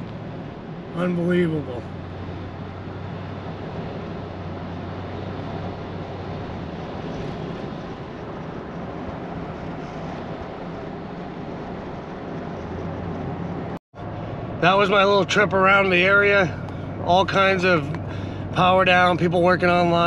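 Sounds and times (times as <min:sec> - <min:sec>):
low engine hum: 0:00.0 - 0:20.0.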